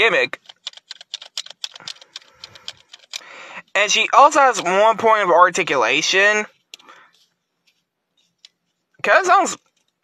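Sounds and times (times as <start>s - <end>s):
plastic toy clicking and rattling: 0.3s - 3.3s.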